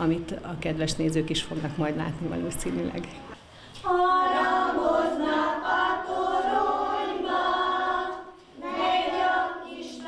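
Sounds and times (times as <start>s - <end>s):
children singing together: 3.8s - 10.0s.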